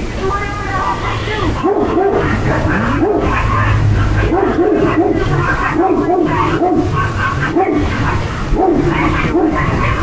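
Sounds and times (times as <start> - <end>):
steady background noise: 0.0 - 10.0
dog barking: 1.6 - 10.0.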